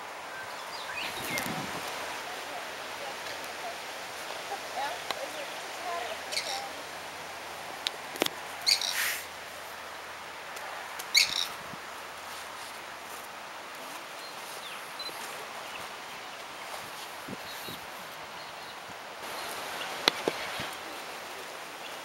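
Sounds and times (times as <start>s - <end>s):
steady outdoor hiss: 0.0s - 22.0s.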